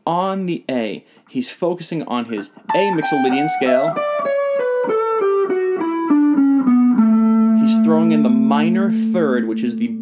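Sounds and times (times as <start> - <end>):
electric guitar descending scale: 2.7 - 10.0.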